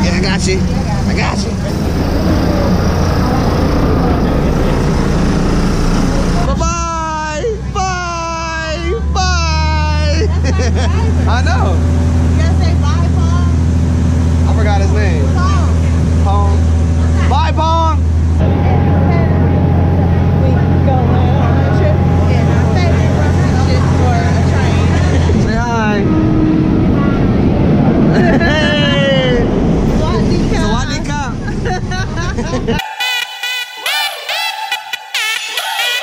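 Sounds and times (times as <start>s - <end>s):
rushing rumble of moving train: 0.0s - 7.0s, 10.3s - 32.8s
people talking: 0.0s - 13.6s, 14.4s - 33.1s
diesel train engine droning: 0.0s - 36.0s.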